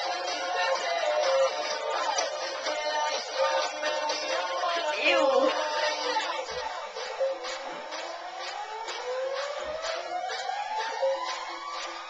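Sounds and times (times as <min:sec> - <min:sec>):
dance music with steady beat: 0:00.0 - 0:12.0.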